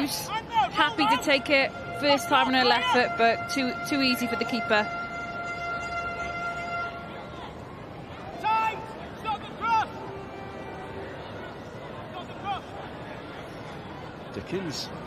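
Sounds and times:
stadium crowd murmur: 0.0s - 15.0s.

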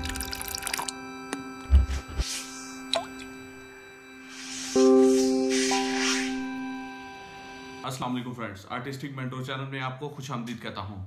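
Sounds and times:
soft held musical tones: 0.0s - 9.8s.

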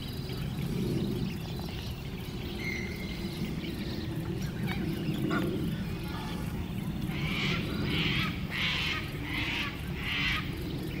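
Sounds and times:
steady low rumble: 0.0s - 11.0s
bird calling: 0.3s - 11.0s.

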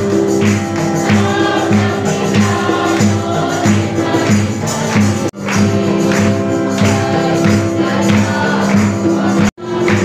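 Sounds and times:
conga drums: 0.0s - 10.0s
group singing: 0.0s - 10.0s.

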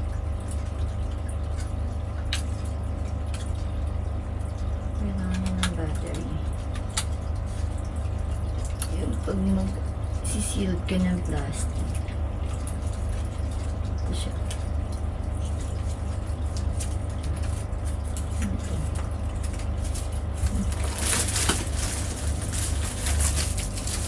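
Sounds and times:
low room hum: 0.0s - 24.0s
plastic packaging crinkling: 15.6s - 24.0s.

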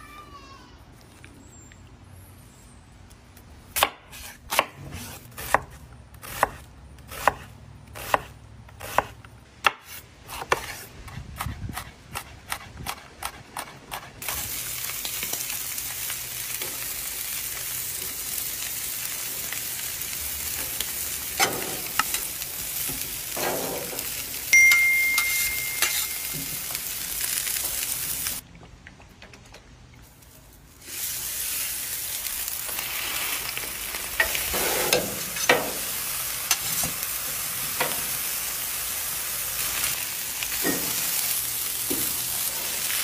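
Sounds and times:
oil sizzling on griddle: 14.2s - 28.4s, 30.7s - 43.0s
spatula scraping griddle: 21.3s - 24.2s, 25.5s - 26.4s, 32.6s - 37.0s
short high tone: 24.5s - 26.7s.

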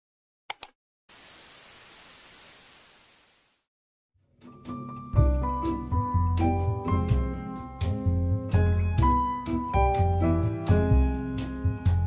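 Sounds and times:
sharp clicks: 0.5s - 0.8s
static-like hiss: 1.1s - 3.6s.

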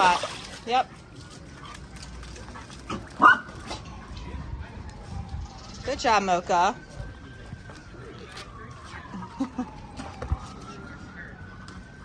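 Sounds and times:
puppy barking: 2.9s - 3.6s.

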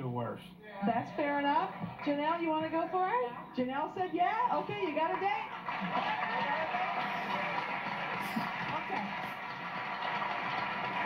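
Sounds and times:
audience applauding through tv speaker: 4.4s - 11.0s.

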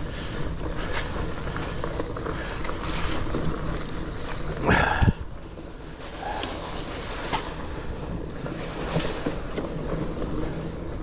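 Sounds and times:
bike tyres rolling on dirt: 0.0s - 11.0s.

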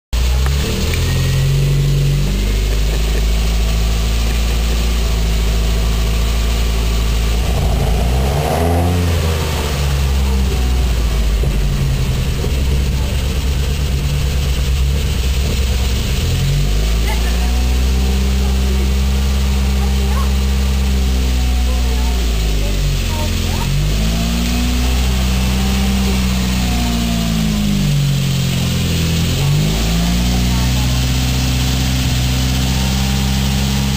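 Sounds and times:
car engine idling and revving: 0.1s - 33.9s.

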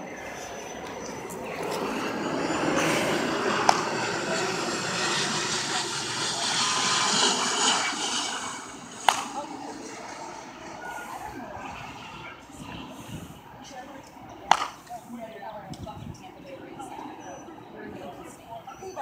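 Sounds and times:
aircraft engine passing: 0.0s - 19.0s
bat hitting ball: 9.0s - 9.3s, 14.5s - 14.7s.

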